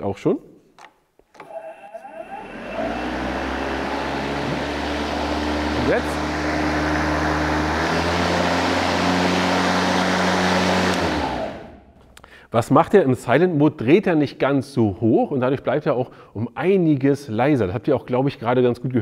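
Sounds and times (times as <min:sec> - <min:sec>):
electric lawn mower motor humming: 0:01.4 - 0:11.8.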